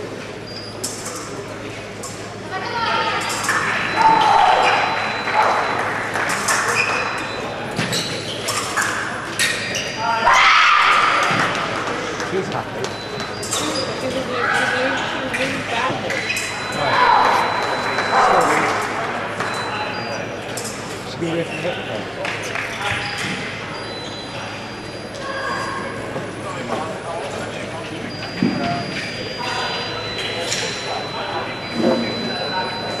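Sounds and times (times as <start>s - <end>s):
voices echoing in hall: 0.0s - 33.0s.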